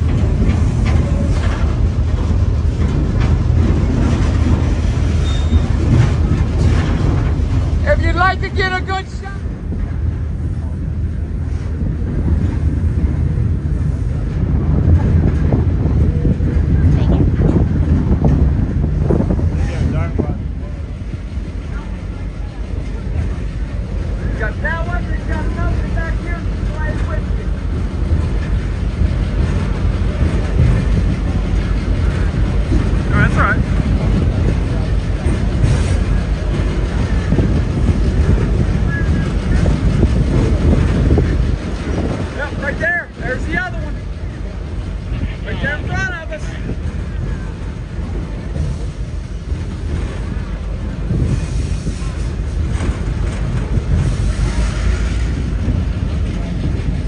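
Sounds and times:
moving train rumble: 0:00.0 - 0:57.0
people talking: 0:07.8 - 0:09.5, 0:16.0 - 0:17.6, 0:19.5 - 0:27.8, 0:30.1 - 0:35.3, 0:38.2 - 0:41.2, 0:42.1 - 0:48.8
wind on microphone: 0:09.4 - 0:21.6, 0:27.7 - 0:42.6, 0:46.6 - 0:57.0.

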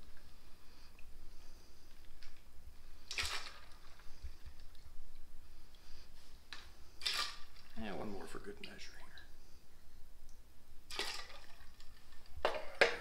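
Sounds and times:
liquid splashing in shaker: 0:03.0 - 0:04.8, 0:10.9 - 0:12.3
cider pouring into metal: 0:10.9 - 0:12.2.

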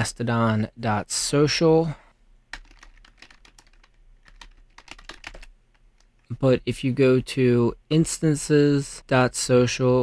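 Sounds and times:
computer keyboard typing: 0:02.5 - 0:06.1.

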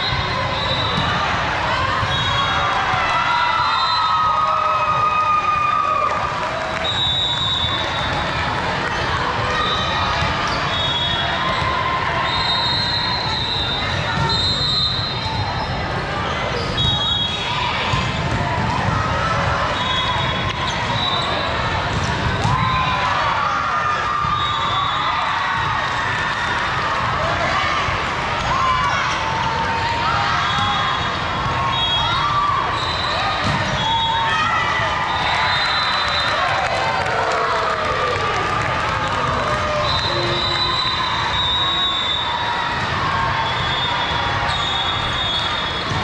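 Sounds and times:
spectators cheering: 0:00.0 - 0:15.6, 0:17.0 - 0:46.0
volleyballs being hit and bounced: 0:21.6 - 0:23.1.

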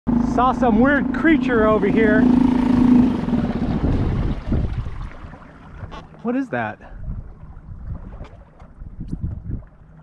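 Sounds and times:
wind buffeting microphone: 0:00.1 - 0:06.1, 0:06.8 - 0:10.0
water washing along kayak hull: 0:00.1 - 0:10.0.

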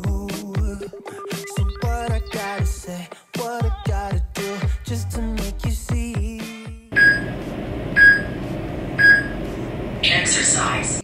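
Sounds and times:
short electronic beeps: 0:07.0 - 0:07.3, 0:08.0 - 0:08.4, 0:09.0 - 0:09.4.

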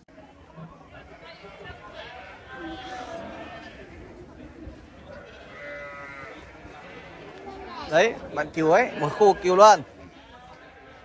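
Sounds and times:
crowd chatter: 0:00.0 - 0:11.0
sheep bleating: 0:01.2 - 0:03.9, 0:05.1 - 0:07.8, 0:08.6 - 0:10.6.

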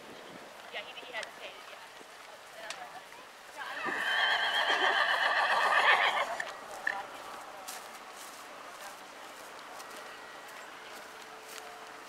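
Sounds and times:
horse whinnying: 0:03.6 - 0:06.5.

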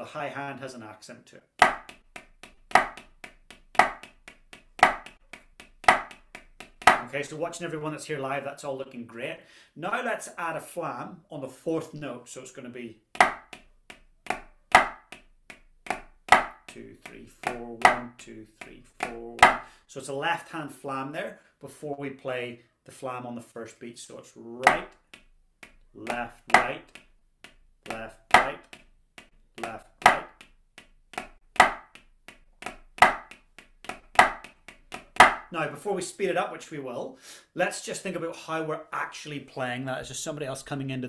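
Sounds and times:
drumsticks on practice pad: 0:01.6 - 0:07.1, 0:13.2 - 0:19.7, 0:24.6 - 0:35.5.

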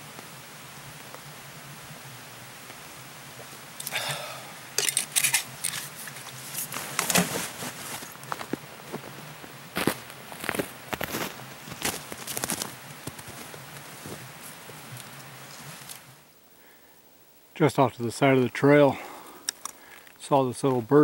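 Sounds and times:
footsteps in snow: 0:05.3 - 0:16.2.

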